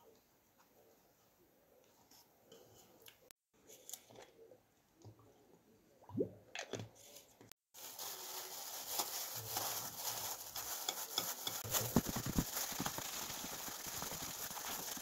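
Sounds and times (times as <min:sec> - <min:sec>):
gloved hands crackling: 0:08.0 - 0:15.0.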